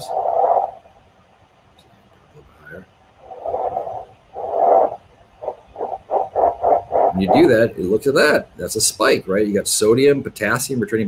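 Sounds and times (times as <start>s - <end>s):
bursts of amplified muscle noise: 0.0s - 1.4s, 2.6s - 8.4s.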